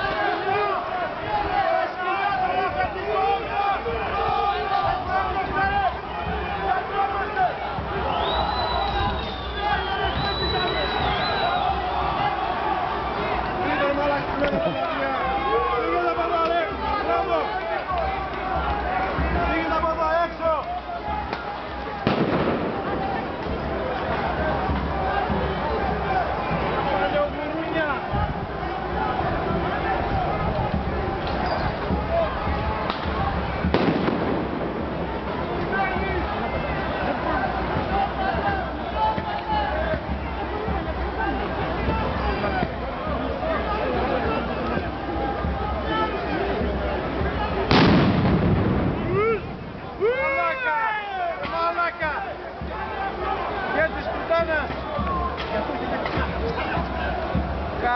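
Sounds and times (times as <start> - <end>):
voices: 0.0 - 57.9
loud explosive bang with echo: 22.0 - 23.6, 32.9 - 35.2, 47.7 - 49.3.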